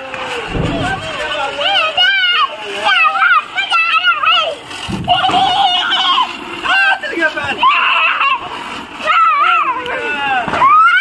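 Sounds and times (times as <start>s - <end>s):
ground firework hissing: 0.0s - 11.0s.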